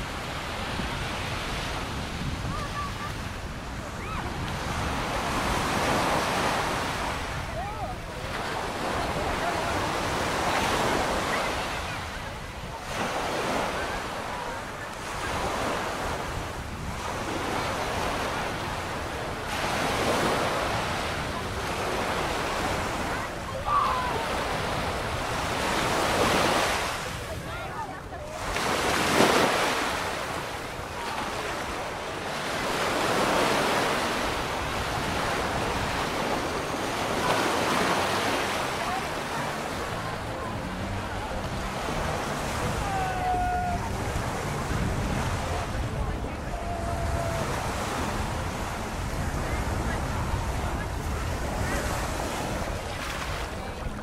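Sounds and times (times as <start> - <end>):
small waves breaking on sand: 0.0 - 54.0.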